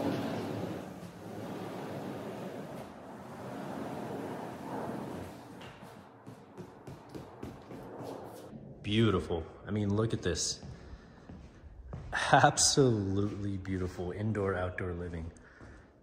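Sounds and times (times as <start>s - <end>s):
sliding glass door rolling: 0.0s - 6.0s.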